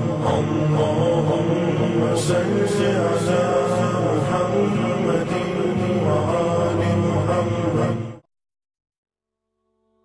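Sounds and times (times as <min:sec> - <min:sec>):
steady low drone: 0:00.0 - 0:08.1
chanting voice: 0:00.0 - 0:08.2.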